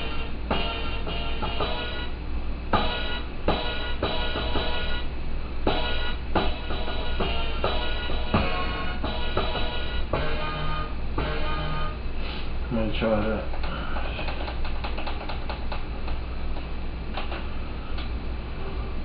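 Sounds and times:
hip-hop beat from sampler: 5.7s - 12.0s.

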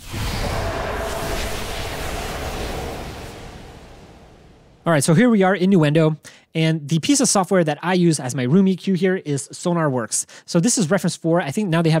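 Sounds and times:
deep boom with rushing tail: 0.0s - 5.0s.

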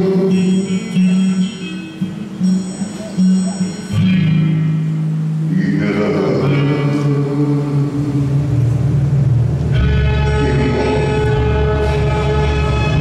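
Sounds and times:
slow romantic ballad chords: 0.0s - 13.0s
deep bass notes: 2.0s - 13.0s.

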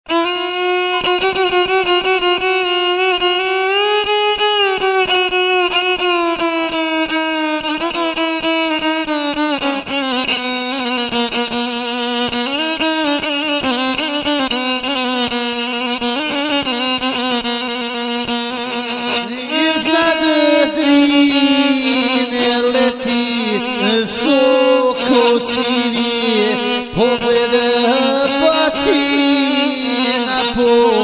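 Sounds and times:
violin sliding melody: 13.2s - 31.0s.

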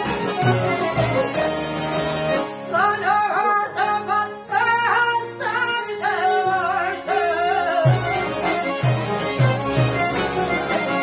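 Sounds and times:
accordion: 0.0s - 11.0s
long-necked lutes: 0.0s - 11.0s
person singing folk melody: 0.0s - 11.0s
violins: 0.0s - 11.0s.

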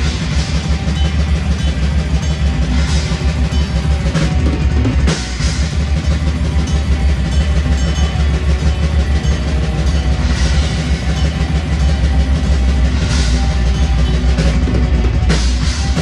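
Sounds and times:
cymbal wash: 0.0s - 16.0s
metal band playing live: 0.0s - 16.0s.

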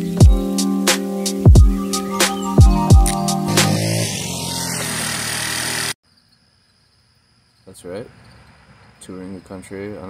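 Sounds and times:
moped engine running: 2.7s - 6.0s.

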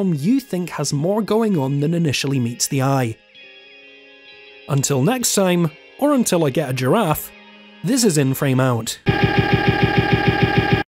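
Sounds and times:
machine rapid clatter: 9.1s - 10.9s
steady machine hum: 9.1s - 10.9s.

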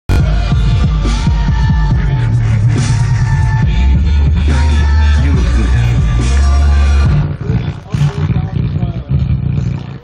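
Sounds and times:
dance music on sound system: 0.1s - 10.0s.

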